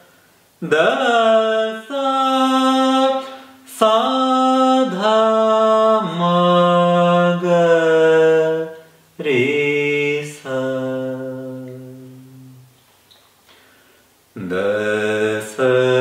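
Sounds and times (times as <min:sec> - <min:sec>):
man singing slow held notes: 0:00.0 - 0:12.8, 0:14.3 - 0:16.0.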